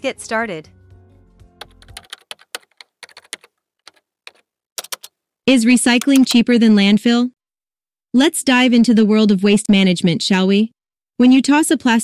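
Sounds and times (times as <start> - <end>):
computer keyboard typing: 1.6 - 5.1, 5.9 - 6.5.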